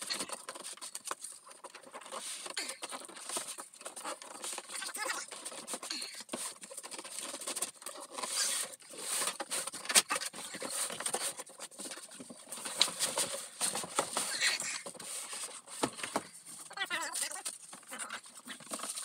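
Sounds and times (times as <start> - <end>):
cardboard boxes scraping and rustling: 0.0 - 19.0.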